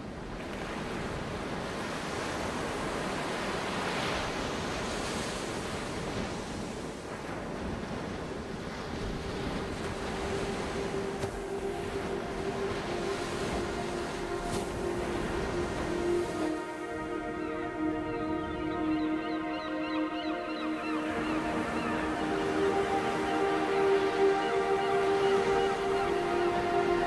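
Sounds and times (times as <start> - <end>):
ocean surf washing: 0.0 - 27.0
sustained synth pad tone: 9.9 - 27.0.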